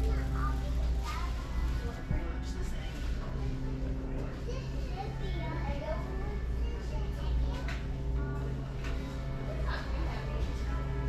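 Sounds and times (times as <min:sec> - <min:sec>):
faint background music: 0:00.0 - 0:11.0
steady low hum: 0:00.0 - 0:11.0.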